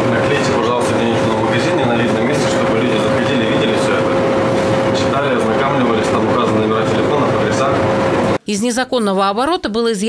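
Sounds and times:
constant noisy background: 0:00.0 - 0:08.4
steady humming tone: 0:00.0 - 0:08.4
indistinct conversation: 0:00.0 - 0:08.8.

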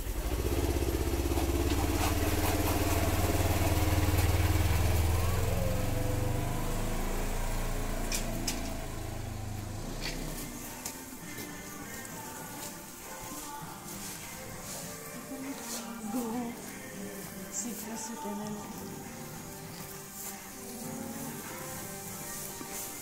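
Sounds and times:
utility vehicle engine driving off: 0:00.0 - 0:17.4.

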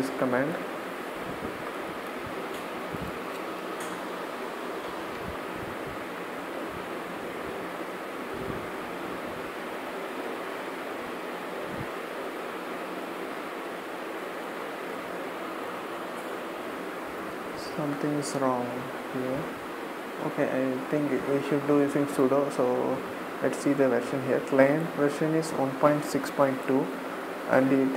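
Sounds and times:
steady background hiss: 0:00.0 - 0:27.9.

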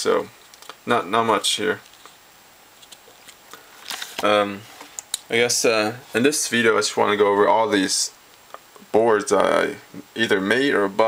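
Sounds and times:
plastic bag rustling: 0:02.8 - 0:05.0.

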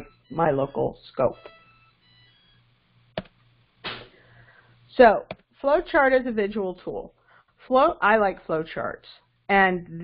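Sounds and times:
low electrical hum: 0:00.0 - 0:10.0
brief puff of noise: 0:03.8 - 0:04.3.

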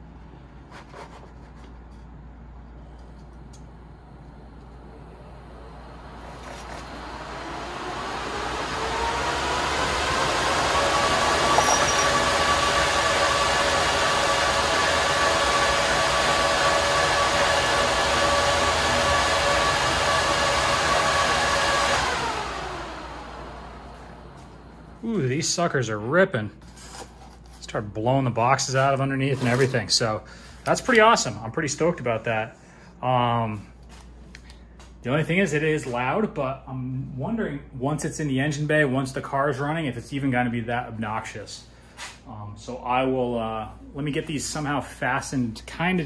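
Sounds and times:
computer fans whining: 0:01.6 - 0:26.5.

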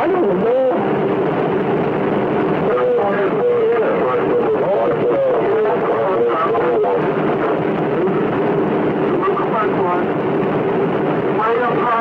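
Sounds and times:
loud hiss and rumble: 0:00.0 - 0:12.0.

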